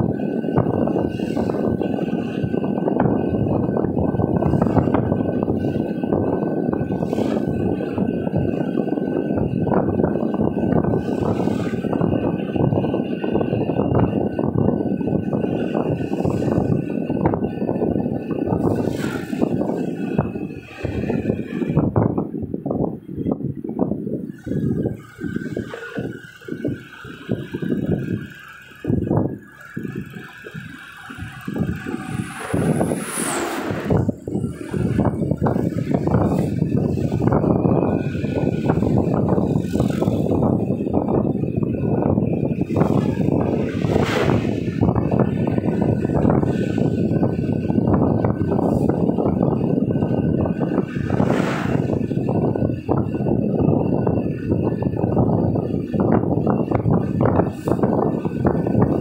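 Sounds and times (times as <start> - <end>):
car road and wind noise: 0.0 - 59.0.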